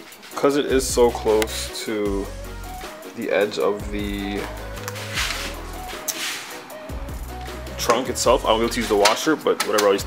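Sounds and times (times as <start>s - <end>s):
background music with bass: 0.0s - 10.0s
hissy cymbal strokes: 5.0s - 7.4s.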